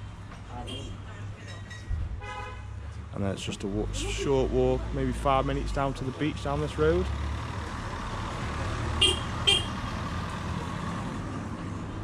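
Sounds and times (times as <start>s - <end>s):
low street rumble: 0.0s - 12.0s
vehicle horn toots: 9.0s - 9.8s.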